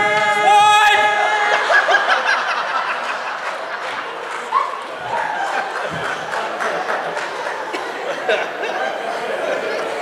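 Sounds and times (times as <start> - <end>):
audience laughing: 1.2 - 10.0.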